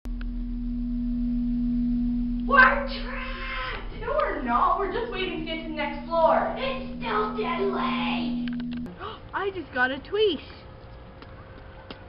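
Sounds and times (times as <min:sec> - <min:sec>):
elevator hum: 0:00.1 - 0:09.0.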